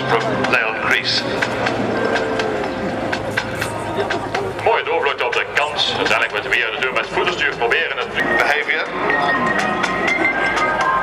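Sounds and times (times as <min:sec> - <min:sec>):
man's voice: 0:00.0 - 0:01.5, 0:03.6 - 0:09.4
propeller plane drone: 0:00.0 - 0:11.0.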